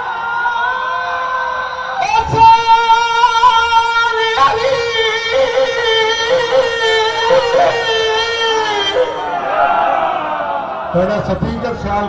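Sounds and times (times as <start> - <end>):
men singing through microphone: 2.2 - 9.3.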